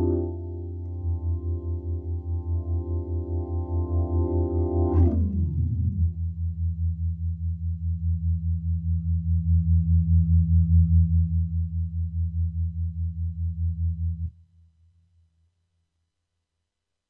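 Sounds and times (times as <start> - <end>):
organ chord through rotary speaker: 0.0 - 5.2.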